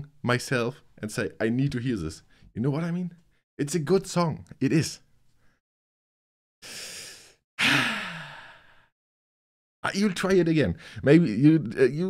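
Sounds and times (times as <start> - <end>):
man sighing: 6.7 - 8.9.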